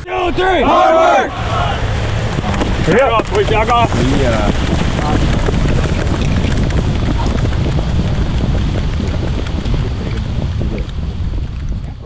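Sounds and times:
wind buffeting microphone: 0:00.1 - 0:12.0
footsteps jogging on grass: 0:01.3 - 0:11.8.

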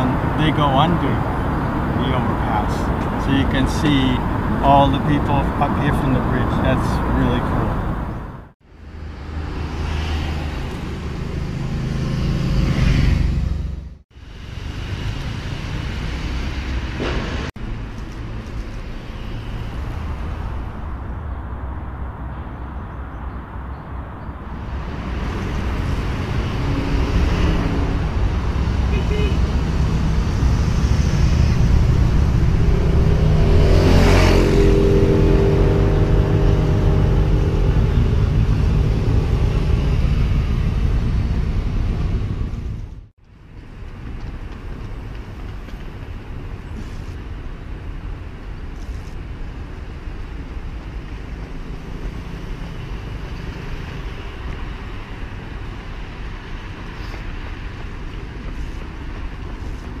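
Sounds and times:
outdoor background noise: 0:00.0 - 1:00.0
motorcycle engine passing: 0:25.0 - 0:41.1.

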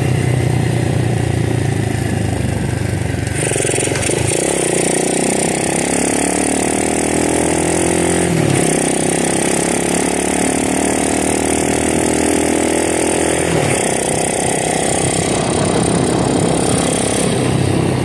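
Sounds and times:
small motorbike engine running: 0:00.0 - 0:18.0.

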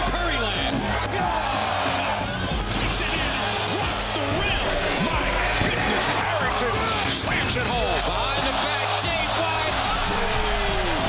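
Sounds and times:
arena crowd noise: 0:00.0 - 0:11.0
background music with low bass: 0:00.0 - 0:11.0.

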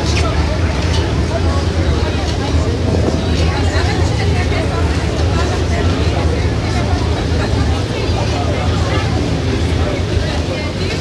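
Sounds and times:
ferry engine drone: 0:00.0 - 0:11.0
passengers talking: 0:00.0 - 0:11.0.

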